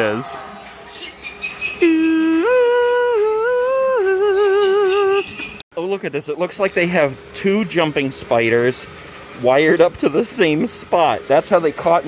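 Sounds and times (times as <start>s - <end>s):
person humming eerie tune: 1.8s - 5.3s.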